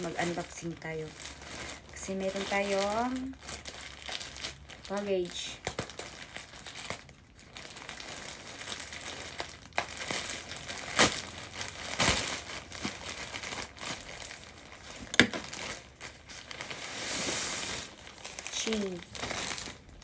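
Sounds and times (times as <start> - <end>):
plastic bag crinkling: 0.0 - 20.0.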